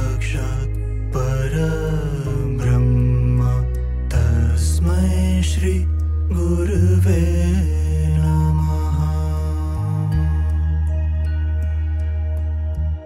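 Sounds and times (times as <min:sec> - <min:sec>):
person chanting: 0:00.0 - 0:11.2
low drone: 0:00.0 - 0:13.0.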